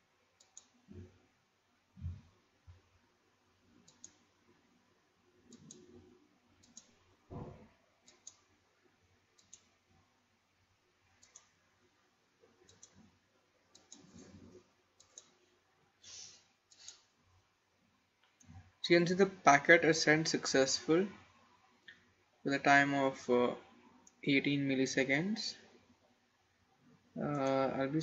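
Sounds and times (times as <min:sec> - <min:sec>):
faint mouse clicks: 0:00.4 - 0:01.2, 0:03.8 - 0:04.3, 0:05.5 - 0:07.0, 0:08.0 - 0:08.5, 0:09.3 - 0:09.8, 0:11.1 - 0:11.6, 0:12.6 - 0:13.1, 0:13.7 - 0:15.5, 0:16.7 - 0:17.2
soft low thump: 0:02.0 - 0:02.3.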